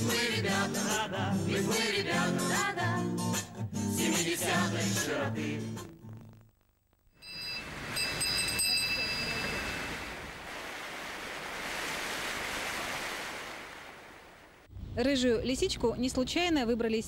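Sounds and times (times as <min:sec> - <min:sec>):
high ringing tones: 0:07.1 - 0:10.3
fountain water splashing: 0:07.6 - 0:14.7.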